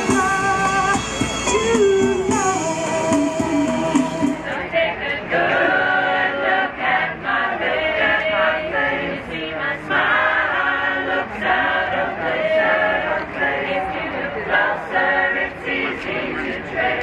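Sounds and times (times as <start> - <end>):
mixed choir singing: 0.0 - 17.0.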